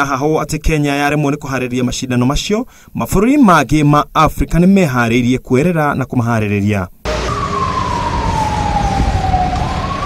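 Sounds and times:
vehicle siren wailing: 7.1 - 10.0
vehicles rumbling on dirt road: 7.1 - 10.0.

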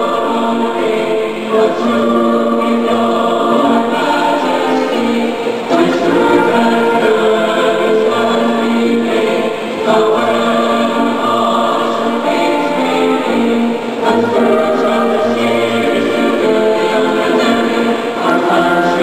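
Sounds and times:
choir singing long held notes: 0.0 - 19.0.

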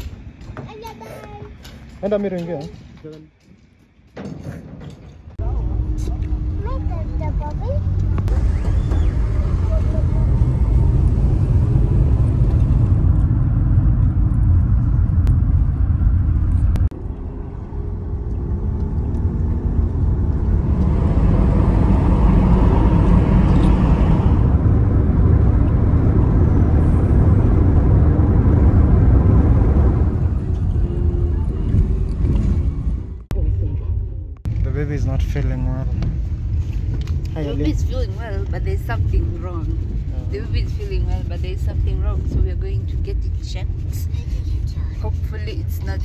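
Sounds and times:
car road and engine rumble: 4.9 - 46.0.

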